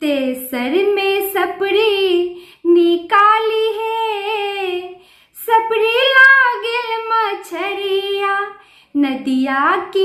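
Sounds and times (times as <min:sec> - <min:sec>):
woman singing unaccompanied: 0:00.0 - 0:10.0.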